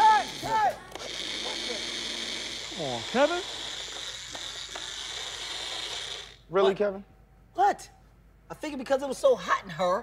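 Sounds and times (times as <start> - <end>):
blender motor whining: 0.0 - 6.4.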